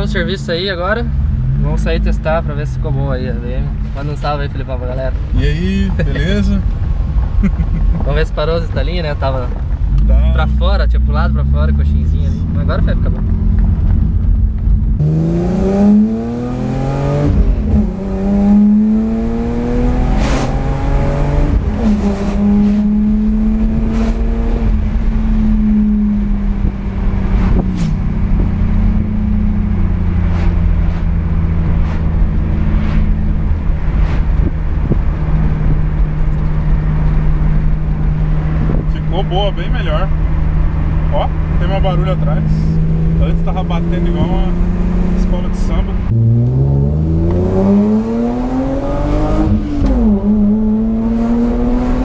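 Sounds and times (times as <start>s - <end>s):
car engine accelerating: 0.0s - 52.0s
road noise: 0.0s - 52.0s
wind noise: 12.4s - 39.3s.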